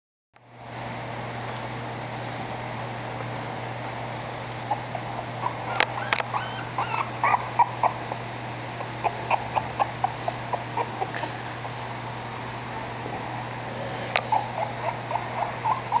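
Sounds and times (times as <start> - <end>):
steady low hum: 0.4 - 16.0
puppy whimpering squeaks: 5.4 - 8.0, 8.8 - 11.1, 14.3 - 16.0.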